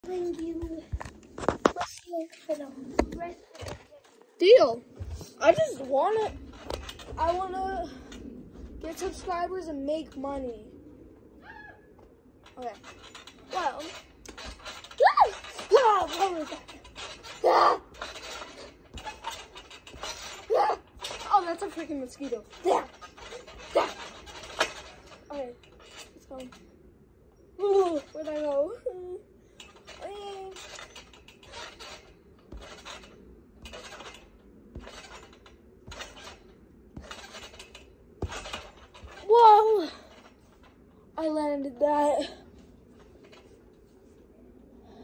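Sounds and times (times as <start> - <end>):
trampoline landing thumps: 4.6 - 10.6, 12.4 - 26.6, 29.6 - 40.8
girl exclaiming: 15.0 - 16.3, 39.3 - 40.0.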